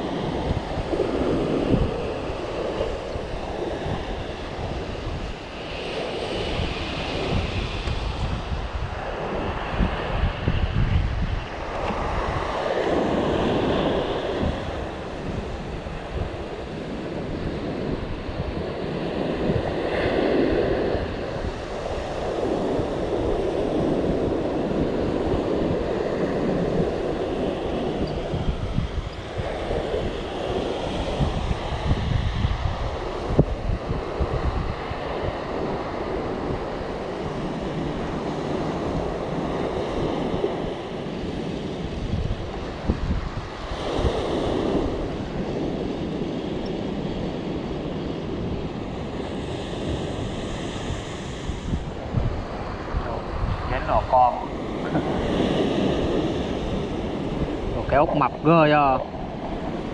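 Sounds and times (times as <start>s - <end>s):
surf breaking on shore: 0.0s - 59.9s
wind buffeting microphone: 0.0s - 59.9s.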